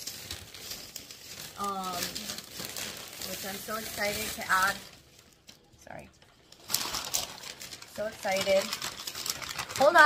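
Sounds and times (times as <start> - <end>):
shopping bag rustling: 0.0 - 5.5, 6.4 - 10.0.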